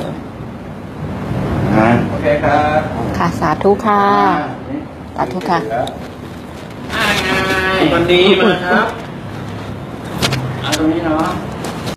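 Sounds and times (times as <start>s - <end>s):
low rumbling background noise: 0.0s - 11.9s.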